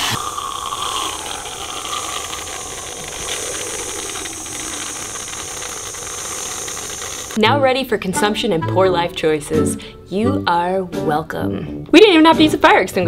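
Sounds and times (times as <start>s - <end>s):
whipped cream can hissing: 0.0s - 7.4s.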